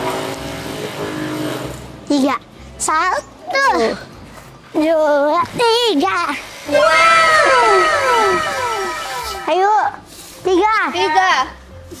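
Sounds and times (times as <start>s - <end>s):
children calling out: 6.7s - 9.6s
comic sliding tones: 6.7s - 9.6s.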